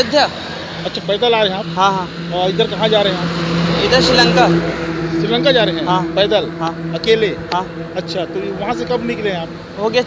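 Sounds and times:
heavy truck passing: 0.0s - 10.0s
voices talking: 0.0s - 10.0s.

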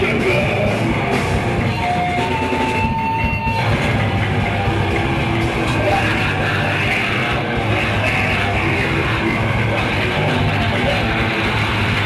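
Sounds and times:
heavy rock band playing: 0.0s - 12.0s.

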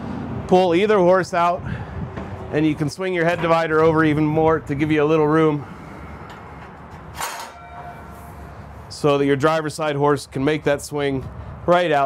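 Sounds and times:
metallic clank: 6.3s - 8.5s
faint metallic ringing: 7.2s - 8.7s.

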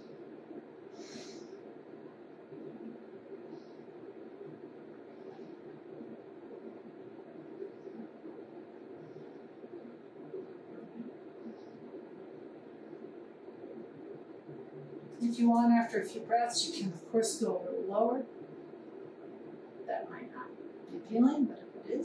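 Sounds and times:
low steady background hum: 0.0s - 22.0s
soft breathing: 0.8s - 1.8s, 2.5s - 6.9s.

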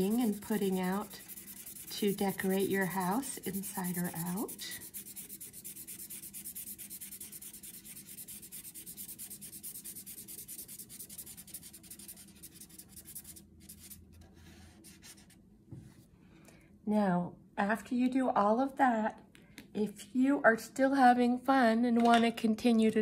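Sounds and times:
marker scribbling on paper: 0.0s - 14.0s.

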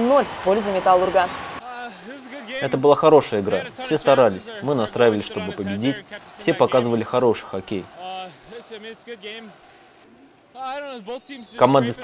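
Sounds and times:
man speaking: 1.6s - 9.6s, 10.6s - 12.0s.

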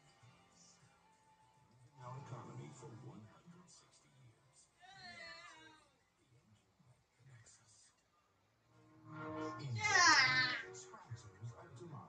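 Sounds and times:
voice or television sound: 0.0s - 12.0s.

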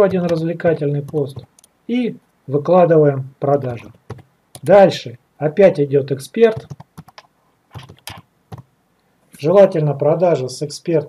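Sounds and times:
typing on computer keyboard: 6.5s - 8.7s.

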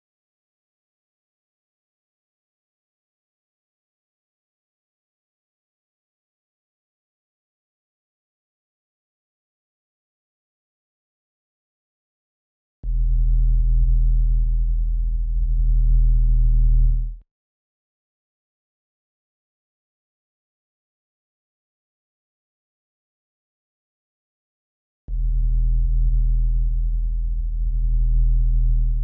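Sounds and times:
low electronic hum: 12.8s - 17.2s, 25.1s - 29.0s.

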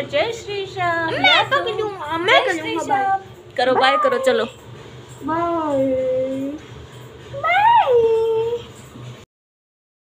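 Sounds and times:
child calling out: 3.8s - 4.4s.

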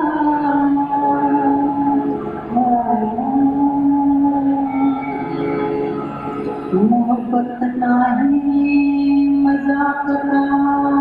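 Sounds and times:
woman singing: 0.0s - 5.2s, 6.7s - 11.0s.

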